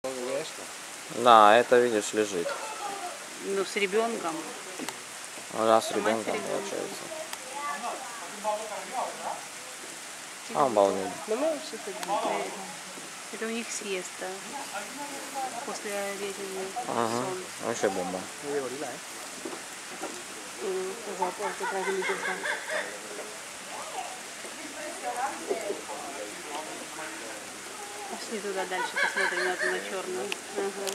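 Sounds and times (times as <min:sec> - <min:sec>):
steady background hiss: 0:00.0 - 0:30.9
people talking: 0:13.4 - 0:19.0, 0:20.6 - 0:22.6, 0:23.7 - 0:30.9
faint voices of people: 0:20.1 - 0:30.9.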